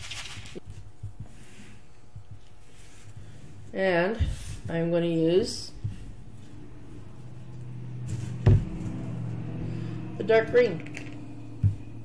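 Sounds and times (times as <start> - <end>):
paper rustle: 0.0 - 0.8
low steady hum: 0.0 - 12.0.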